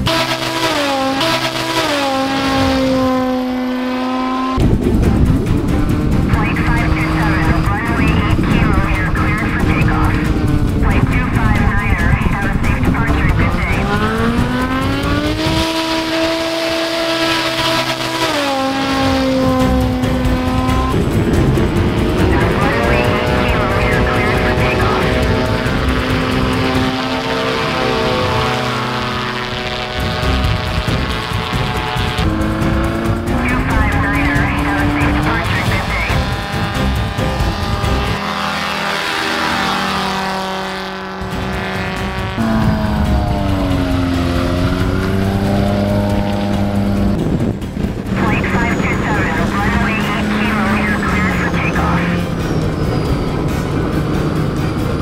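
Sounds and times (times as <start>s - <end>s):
propeller aircraft engines: 0.0s - 55.0s.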